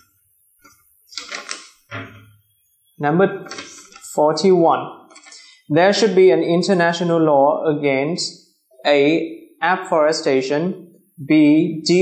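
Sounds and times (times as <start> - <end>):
paper rustling and crackling: 1.2 - 1.7.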